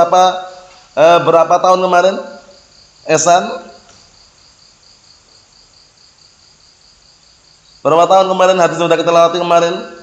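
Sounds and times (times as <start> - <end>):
man speaking: 0.0 - 2.4, 3.1 - 3.8, 7.9 - 10.0
insect chirping: 0.0 - 10.0.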